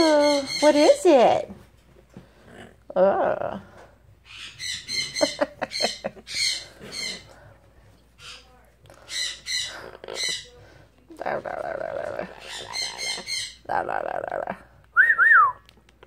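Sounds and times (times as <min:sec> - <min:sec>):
parrot squawking and chirping: 0:00.0 - 0:01.2, 0:04.2 - 0:07.4, 0:08.2 - 0:10.6, 0:11.4 - 0:14.1.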